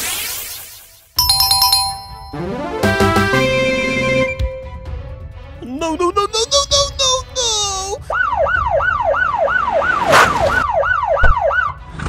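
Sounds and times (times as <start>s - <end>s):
bright electronic chimes jingle: 1.2s - 4.7s.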